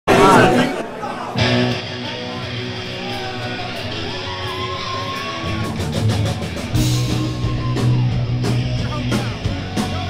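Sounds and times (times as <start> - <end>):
live rock band: 1.3 - 10.0.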